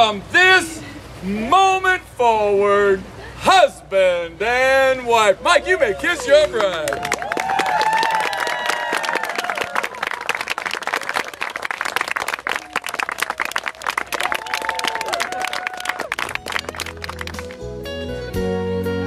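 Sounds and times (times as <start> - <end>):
voices whooping and calling out: 5.4 - 10.2, 12.6 - 16.2
people applauding: 6.3 - 17.7.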